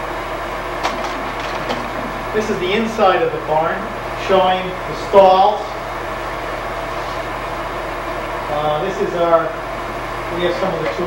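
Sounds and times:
projector fan hum: 0.0 - 11.0.

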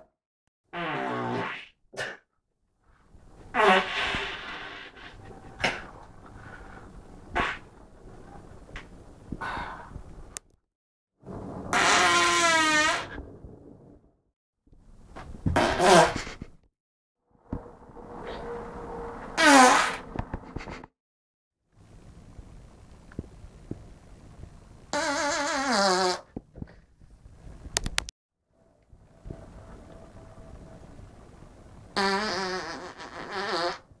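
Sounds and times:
man farting: 0.8 - 2.2, 3.5 - 6.0, 7.3 - 7.7, 11.7 - 13.1, 15.5 - 16.4, 25.0 - 26.3, 32.0 - 33.9.

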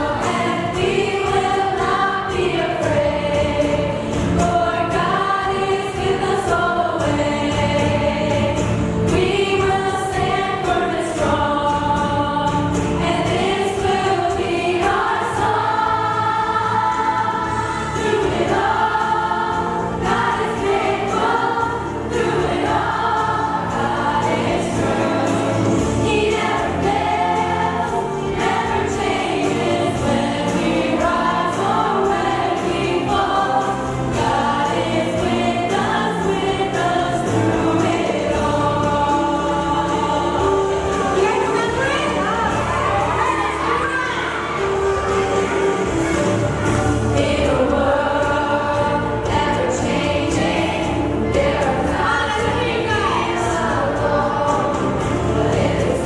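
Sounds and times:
women singing together: 0.0 - 56.0.

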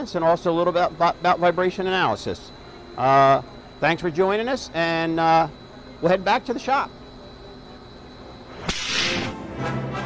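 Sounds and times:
orchestral music with brass: 9.3 - 10.0.

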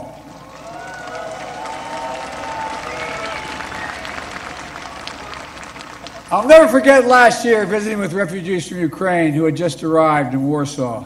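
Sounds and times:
large audience applauding: 0.3 - 8.2.

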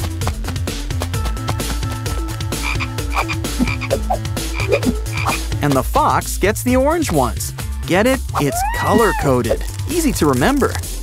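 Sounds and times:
frog croaking: 2.6 - 5.4.

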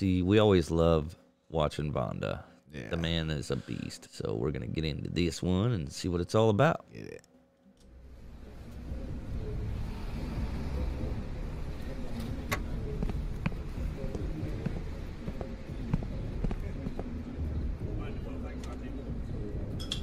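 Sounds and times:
muffled voice: 2.7 - 4.0.

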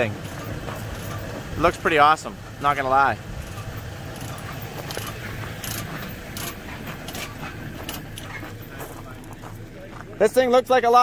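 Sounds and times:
metal chains clinking: 0.0 - 1.7, 3.3 - 9.0
low steady rumble: 0.0 - 11.0.

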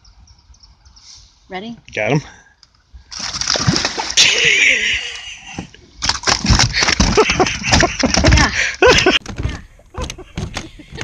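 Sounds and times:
fish splashing at water surface: 3.1 - 4.7, 6.0 - 7.9.

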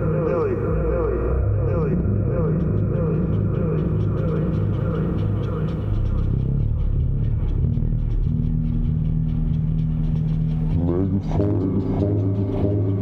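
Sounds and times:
fast ticking pulse: 0.0 - 13.0
low synth drone: 0.0 - 13.0
wavering synth tones: 0.0 - 13.0.

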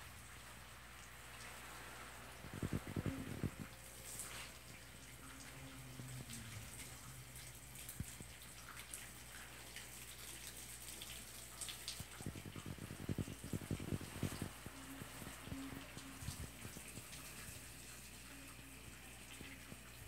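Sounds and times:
hose spraying water on plants: 0.0 - 20.0.

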